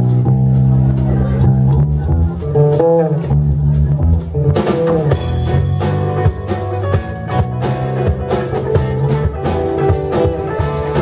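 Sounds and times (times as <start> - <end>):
bending guitar notes: 0.0 - 11.0
drum kit: 0.0 - 11.0
electric bass: 0.0 - 11.0
electric guitars: 0.0 - 11.0.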